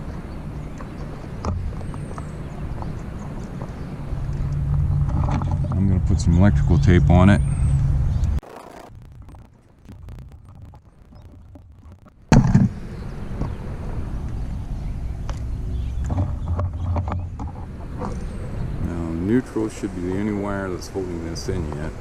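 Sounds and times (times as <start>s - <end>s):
low rumble: 1.6s - 19.3s
tape crackling clicks: 8.2s - 12.8s.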